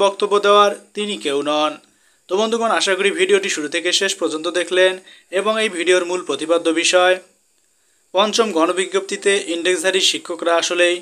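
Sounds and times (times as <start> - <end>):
narrator reading aloud: 0.0 - 7.3, 8.1 - 11.0.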